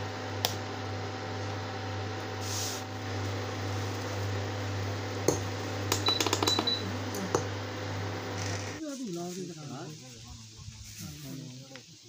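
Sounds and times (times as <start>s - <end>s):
milk tea boiling in a saucepan: 0.0s - 8.4s.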